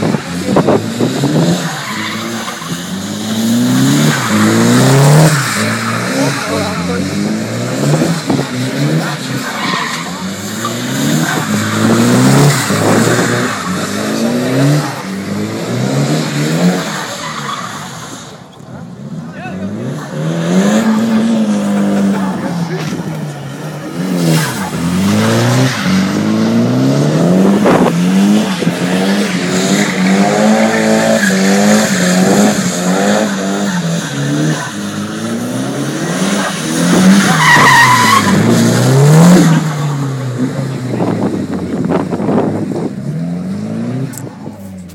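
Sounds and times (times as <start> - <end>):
car engine revving: 0.0 - 44.9
tyre squeal: 1.7 - 3.1, 37.2 - 38.6.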